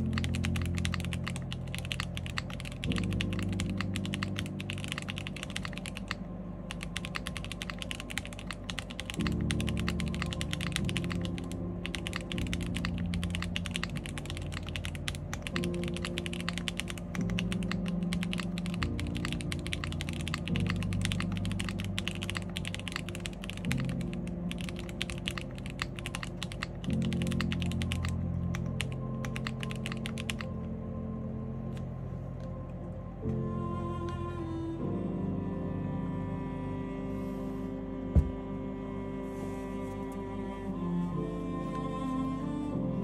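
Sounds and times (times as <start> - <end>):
mechanical keyboard typing: 0.0 - 30.5
soft background music: 0.0 - 43.0.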